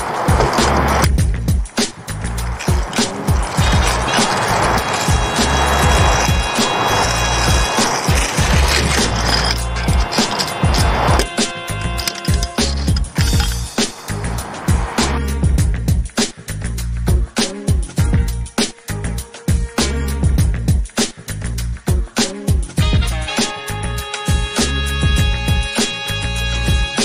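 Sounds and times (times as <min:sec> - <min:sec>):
skate wheels rolling on asphalt: 0:00.0 - 0:14.8
music with heavy bass: 0:00.0 - 0:27.0.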